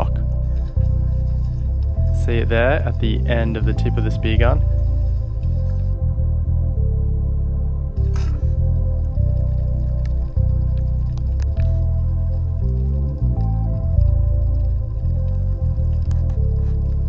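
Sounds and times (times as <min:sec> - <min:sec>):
ambient music: 0:00.0 - 0:17.0.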